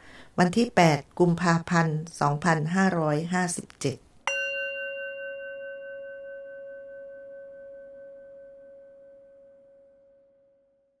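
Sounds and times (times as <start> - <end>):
bell ringing: 4.3 - 8.4.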